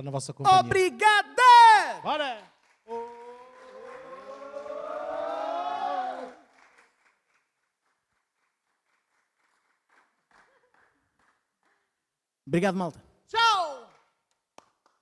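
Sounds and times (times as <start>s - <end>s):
faint scattered clapping: 2.2s - 5.0s, 6.2s - 12.1s, 13.8s - 15.0s
voices shouting together: 2.9s - 6.4s.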